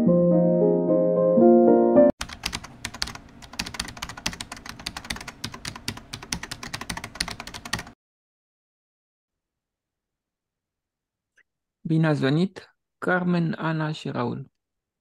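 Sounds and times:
piano music: 0:00.0 - 0:02.2
computer keyboard typing clicks: 0:02.2 - 0:08.0.

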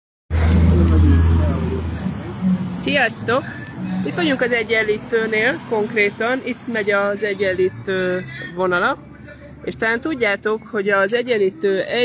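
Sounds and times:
vehicle engine rumbling: 0:00.3 - 0:12.0
faint voices: 0:00.4 - 0:12.0.

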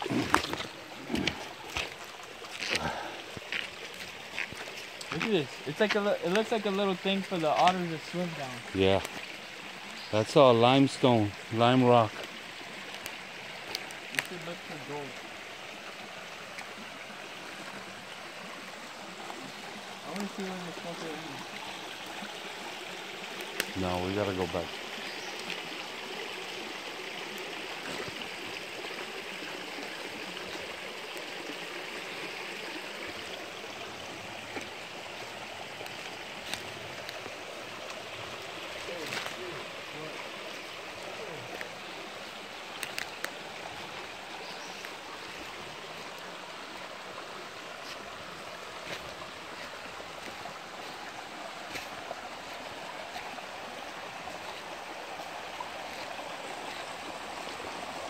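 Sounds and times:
footsteps on leafy bank: 0:00.0 - 0:10.0, 0:33.3 - 0:46.9, 0:47.5 - 0:57.6
creek water rushing: 0:00.0 - 0:58.0.

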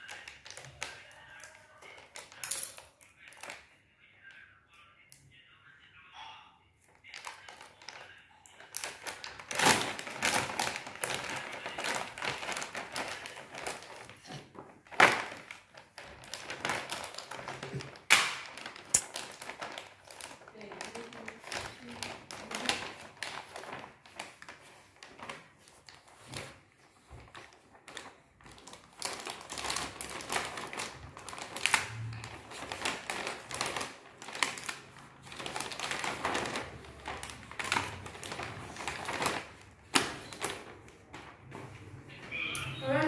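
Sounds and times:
plastic items tapping on tile floor: 0:00.0 - 0:03.7, 0:06.9 - 0:41.8
plastic pouch crinkling: 0:07.0 - 0:41.0.

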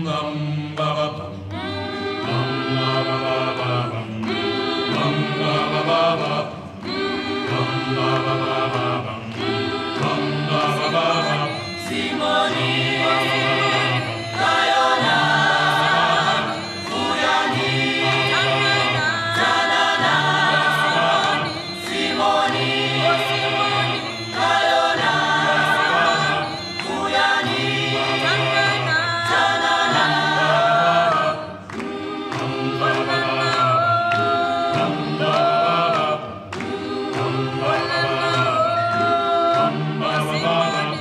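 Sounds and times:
unaccompanied choir singing: 0:00.0 - 0:41.0.

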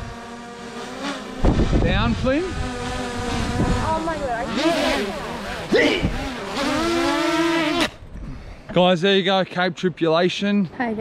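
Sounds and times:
drone propellers buzzing: 0:00.0 - 0:08.5
wind buffeting microphone: 0:01.3 - 0:08.6.

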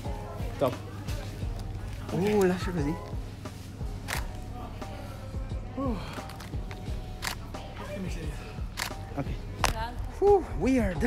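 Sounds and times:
camera shutter clicking: 0:07.2 - 0:07.4, 0:08.8 - 0:09.0.

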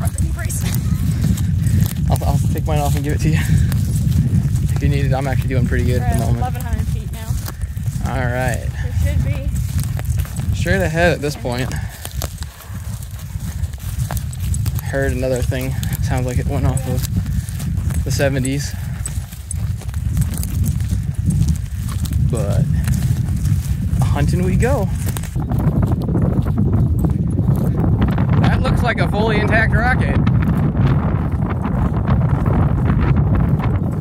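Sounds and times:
footsteps on field: 0:00.0 - 0:34.0
wind buffeting microphone: 0:00.0 - 0:34.0.

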